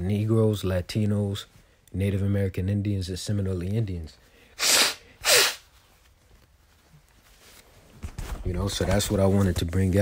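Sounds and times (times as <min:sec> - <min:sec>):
person sneezing: 0:04.6 - 0:05.6.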